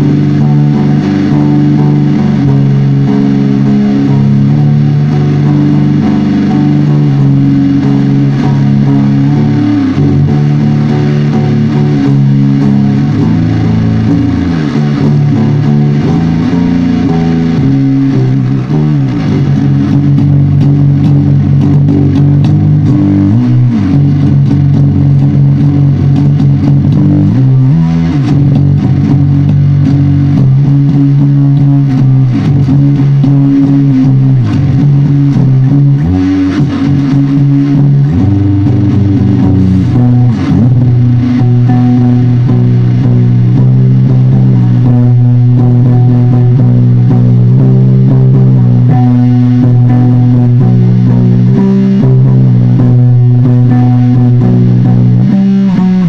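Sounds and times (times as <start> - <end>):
distorted electric guitar riff: 0.0 - 56.0.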